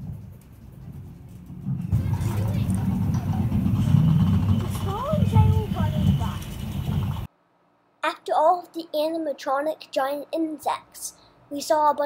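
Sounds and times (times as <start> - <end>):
low rumble: 0.0 - 7.3
indistinct voices: 1.9 - 7.3.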